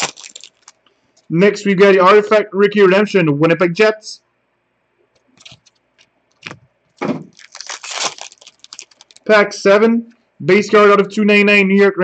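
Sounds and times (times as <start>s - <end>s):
wrapper crinkling and tearing: 0.0s - 0.8s, 5.4s - 5.8s, 7.3s - 9.3s.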